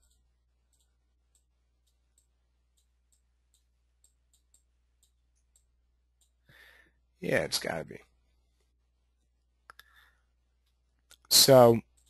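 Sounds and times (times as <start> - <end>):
computer mouse clicks: 0.0 - 6.5.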